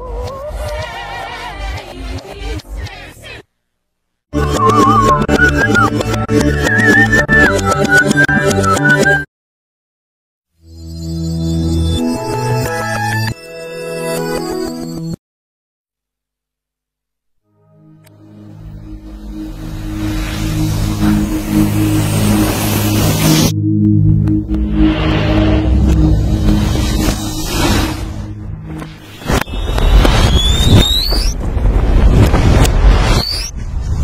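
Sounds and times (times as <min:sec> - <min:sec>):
sustained low chord: 0:17.5 - 0:27.2
loud rough rumble: 0:24.3 - 0:29.0.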